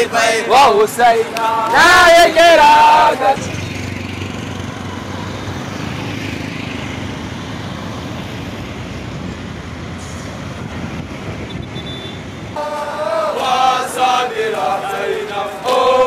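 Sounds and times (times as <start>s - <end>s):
road traffic noise: 0.0s - 16.0s
vehicle engine humming nearby: 0.0s - 16.0s.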